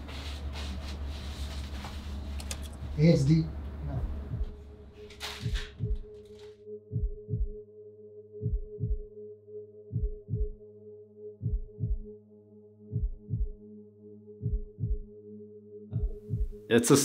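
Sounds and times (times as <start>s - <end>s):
low synth drone: 0.0s - 16.7s
heartbeat thumps: 3.8s - 6.2s, 6.9s - 7.6s, 8.4s - 9.1s, 9.9s - 10.6s, 11.4s - 12.2s, 12.9s - 13.6s, 14.4s - 15.1s, 15.9s - 16.7s.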